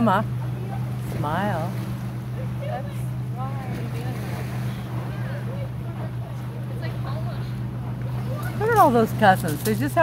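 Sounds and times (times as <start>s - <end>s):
motorboat engine drone: 0.0s - 10.0s.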